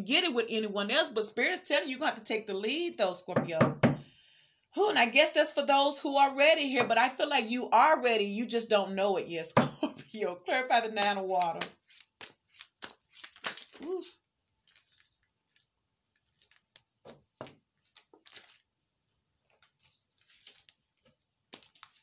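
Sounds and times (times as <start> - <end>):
cards being shuffled: 11.0 - 14.0, 14.6 - 18.6, 19.4 - 22.0.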